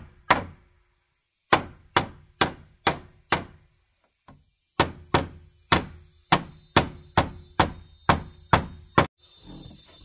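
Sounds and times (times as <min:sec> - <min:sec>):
hammer striking wooden planks: 0:00.0 - 0:00.6, 0:01.5 - 0:03.6, 0:04.3 - 0:09.1.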